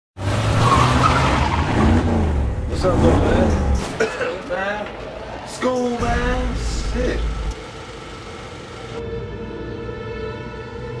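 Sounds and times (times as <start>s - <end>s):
car engine running: 1.7s - 4.0s.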